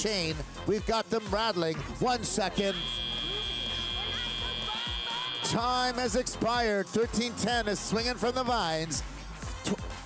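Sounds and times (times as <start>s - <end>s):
background music: 0.0s - 10.0s
buzzer steady high tone: 2.6s - 5.7s.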